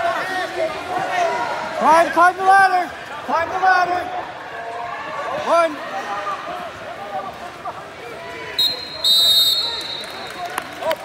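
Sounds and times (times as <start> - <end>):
referee's whistle: 8.6 - 10.4.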